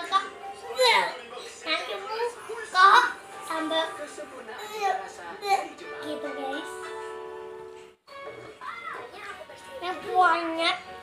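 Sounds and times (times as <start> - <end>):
faint mobile game music: 0.0 - 11.0.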